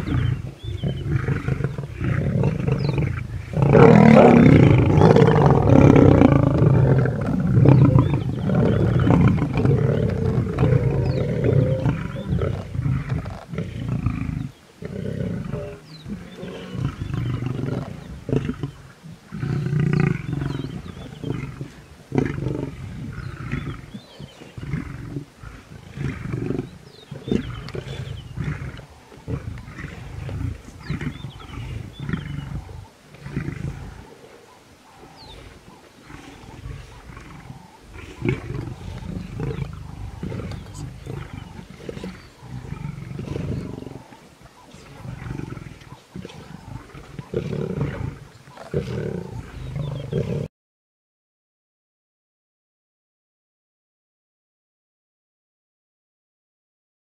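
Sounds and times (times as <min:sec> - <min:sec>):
lions growling: 0:00.0 - 0:50.5.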